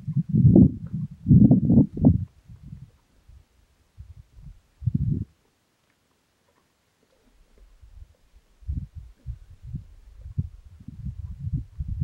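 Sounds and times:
wind buffeting microphone: 0.0s - 5.4s, 7.6s - 12.0s.

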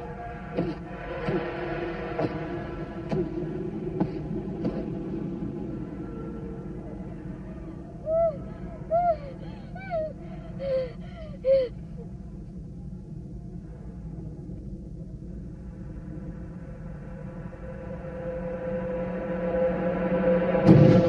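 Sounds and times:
steady low drone: 0.0s - 21.0s
woman's pained cries: 8.0s - 11.8s.

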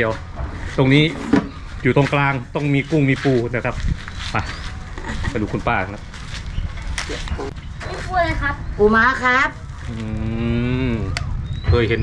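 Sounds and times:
person holding long vowel: 10.0s - 11.2s.

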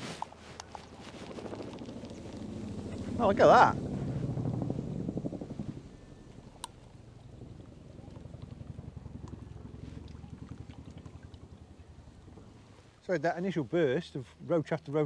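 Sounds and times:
distant helicopter rotor beating: 0.0s - 14.2s.

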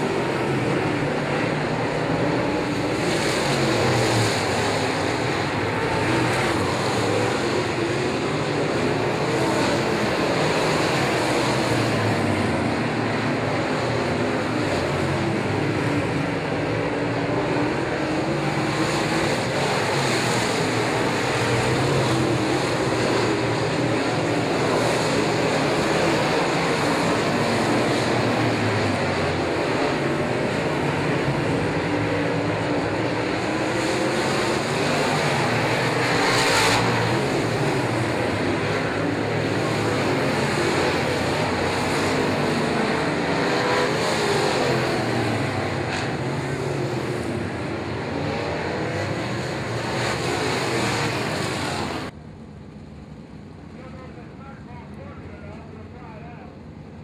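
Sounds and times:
race car engines droning: 0.0s - 57.0s.

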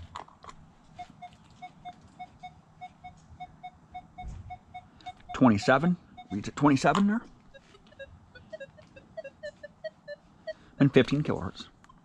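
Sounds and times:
metal detector beeps: 1.0s - 11.3s.

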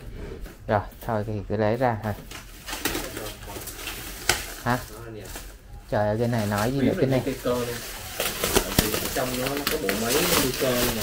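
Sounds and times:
plastic wrap crinkling: 2.0s - 11.0s.

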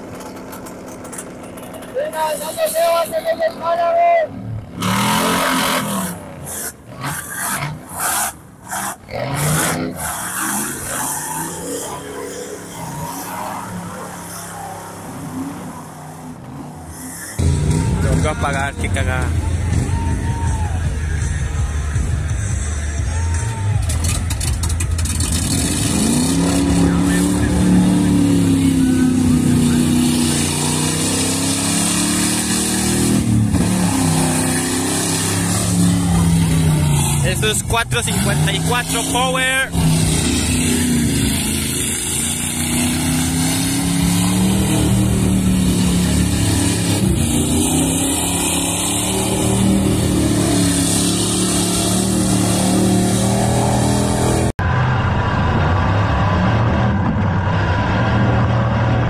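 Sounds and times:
off-road vehicles revving in mud: 0.0s - 59.0s.

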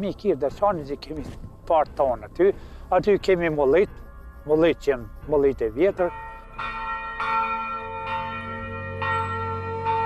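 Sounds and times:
church bells ringing: 5.8s - 10.0s.

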